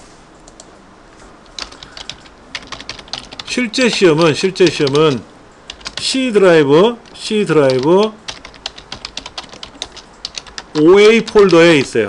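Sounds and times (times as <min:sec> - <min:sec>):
keyboard key clicks: 0:07.0 - 0:11.9.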